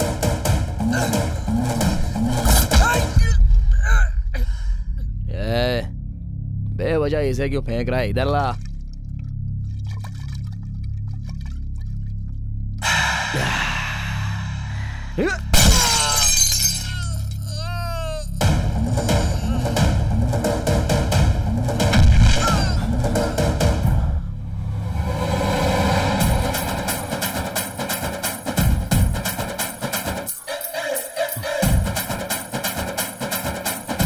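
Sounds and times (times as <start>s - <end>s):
dramatic background music: 0.0s - 16.2s, 17.0s - 30.4s
low drone: 12.8s - 15.6s, 21.9s - 27.8s
dense pounding hits: 18.4s - 24.2s.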